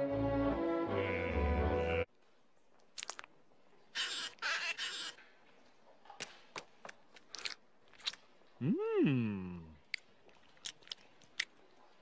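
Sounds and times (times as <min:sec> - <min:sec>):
soft wet squishes: 0:02.2 - 0:04.0, 0:05.2 - 0:12.0.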